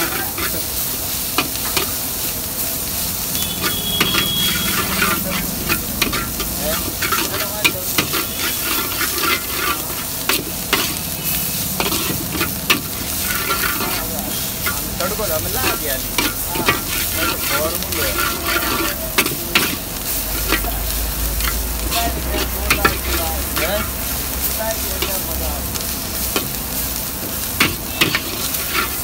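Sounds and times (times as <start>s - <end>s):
spatula scraping a wok: 0.0s - 29.0s
vegetables sizzling in a wok: 0.0s - 29.0s.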